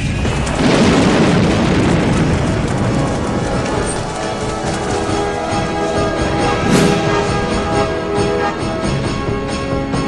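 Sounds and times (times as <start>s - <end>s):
trailer music: 6.5s - 8.2s
deep explosion boom: 6.6s - 7.9s.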